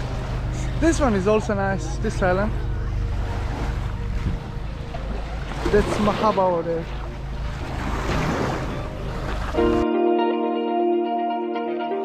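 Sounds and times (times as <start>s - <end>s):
wind buffeting microphone: 0.0s - 9.8s
gentle surf: 0.0s - 12.0s.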